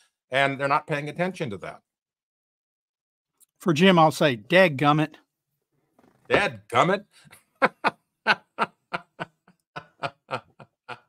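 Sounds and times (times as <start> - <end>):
person chuckling: 7.4 - 11.0.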